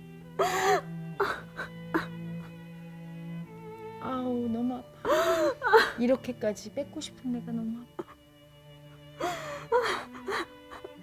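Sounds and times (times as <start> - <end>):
bowed string music: 0.0 - 11.0.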